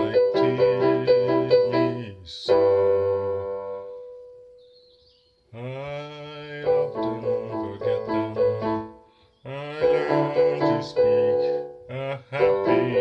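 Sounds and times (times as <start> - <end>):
piano chords: 0.0 - 4.7, 6.4 - 13.0.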